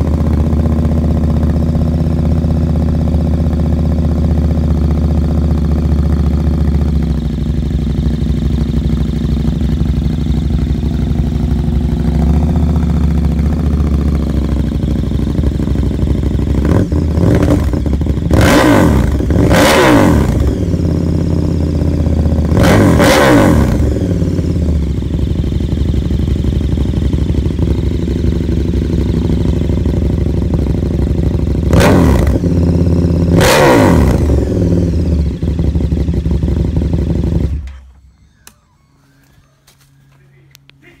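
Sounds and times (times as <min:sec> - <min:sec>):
motorcycle engine idling and revving: 0:00.0 - 0:41.0.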